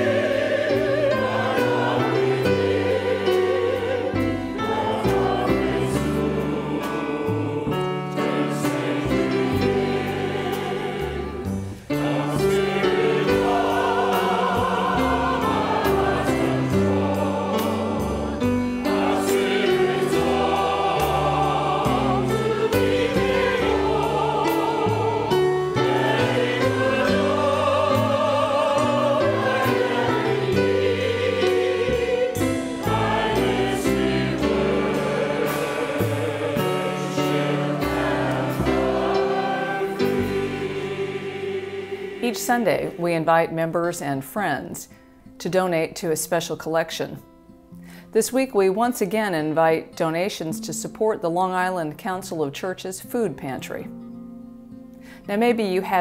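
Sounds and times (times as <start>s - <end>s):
piano accompaniment: 0.0s - 44.5s
choir singing a hymn: 0.0s - 44.6s.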